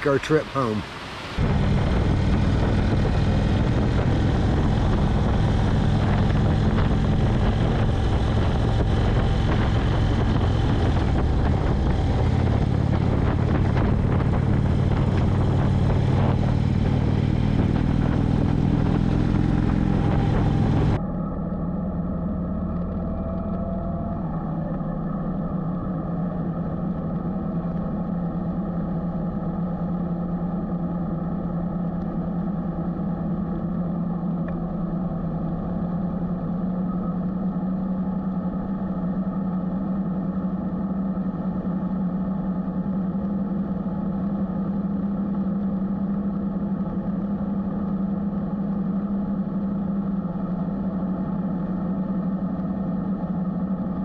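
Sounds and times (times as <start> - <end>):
wind and road noise: 0.0 - 54.0
motorcycle engine running: 1.4 - 54.0.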